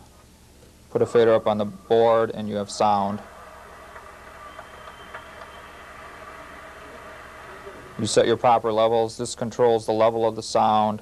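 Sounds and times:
low hiss and hum: 0:00.0 - 0:11.0.

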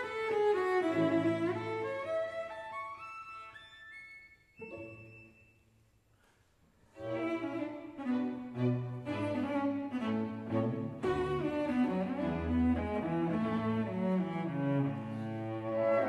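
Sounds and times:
cello playing: 0:00.0 - 0:03.0, 0:06.9 - 0:16.0.

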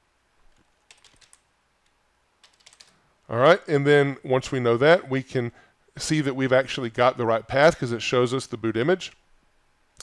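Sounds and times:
computer keyboard keystrokes: 0:00.8 - 0:01.4, 0:02.4 - 0:03.0.

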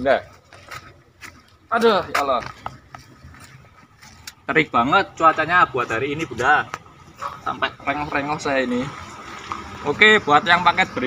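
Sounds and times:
rustles of movement: 0:00.1 - 0:04.6.

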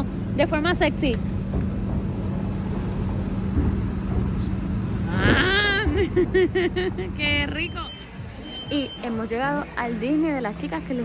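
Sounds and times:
city street traffic rumble: 0:00.0 - 0:11.0
engine-like hum: 0:00.0 - 0:11.0.

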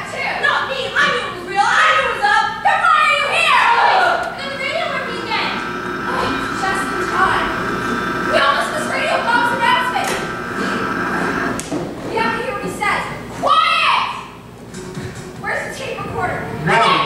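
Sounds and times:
distant voices speaking on stage: 0:01.4 - 0:13.4.

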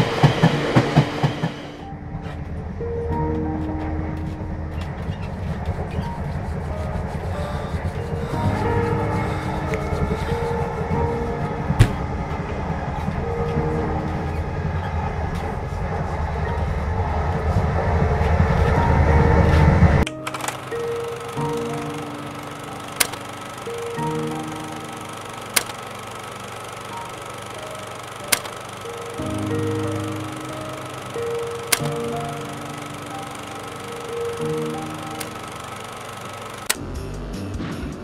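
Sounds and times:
film soundtrack music: 0:00.0 - 0:38.0
sharp clicks: 0:20.0 - 0:36.8.

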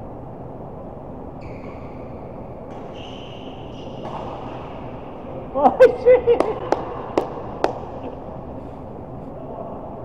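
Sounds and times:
sports hall hum: 0:00.0 - 0:10.0
sharp taps: 0:06.4 - 0:08.2.

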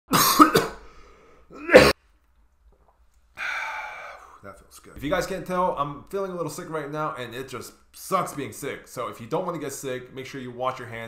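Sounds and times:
man clearing throat: 0:00.1 - 0:00.8, 0:01.5 - 0:02.0
man coughing: 0:00.1 - 0:00.8, 0:01.5 - 0:02.0.

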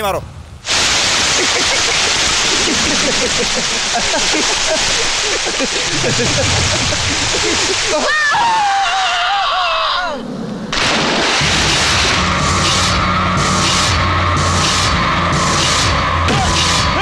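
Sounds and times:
water spraying from hoses: 0:00.6 - 0:08.8, 0:10.8 - 0:17.0
man shouting and laughing: 0:07.8 - 0:10.1, 0:16.3 - 0:17.0
dramatic film score with drone: 0:08.6 - 0:17.0.

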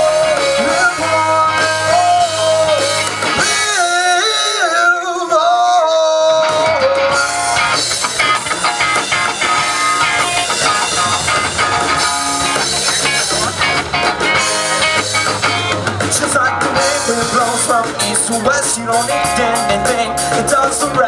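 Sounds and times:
bass guitar: 0:00.0 - 0:21.0
bending guitar lead line: 0:00.0 - 0:21.0
drum kit: 0:00.0 - 0:21.0
electric guitar: 0:00.0 - 0:21.0.

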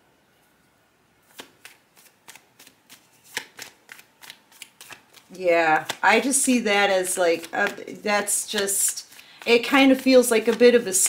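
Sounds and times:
cards being shuffled: 0:01.2 - 0:11.0.

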